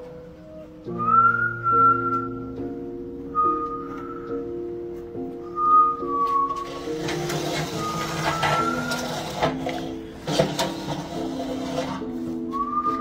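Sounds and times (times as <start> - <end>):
background music with held notes: 0.0 - 13.0
man whistling: 1.0 - 2.6, 3.3 - 4.5, 5.4 - 6.7, 12.5 - 13.0
sharp knocks and clatter: 6.6 - 12.1.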